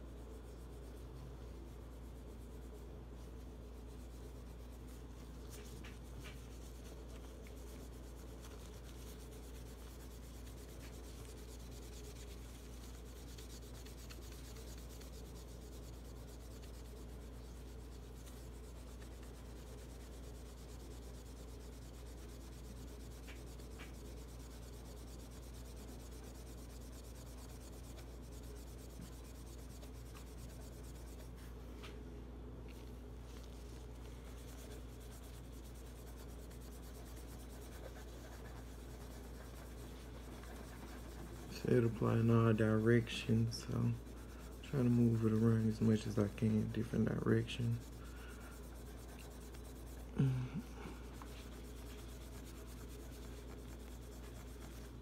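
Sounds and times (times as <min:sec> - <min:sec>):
hand rubbing polish on steel: 0:00.0 - 0:31.6, 0:33.2 - 0:55.0
low steady hum: 0:00.0 - 0:55.0.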